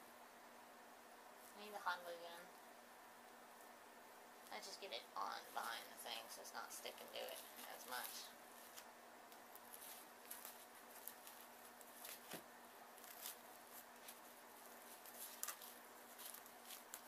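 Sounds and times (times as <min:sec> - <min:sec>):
faint steady hum: 0:00.0 - 0:17.0
felt and paper rustling: 0:06.9 - 0:17.0.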